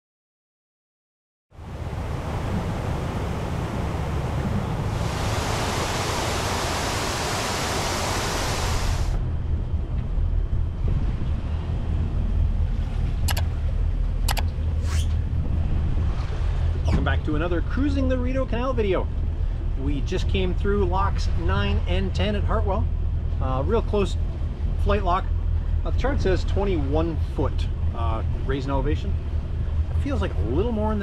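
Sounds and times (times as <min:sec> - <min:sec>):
low engine rumble: 0:01.6 - 0:31.0
wind rush on microphone: 0:01.6 - 0:31.0
sharp clicks: 0:13.3 - 0:13.5, 0:14.3 - 0:14.5.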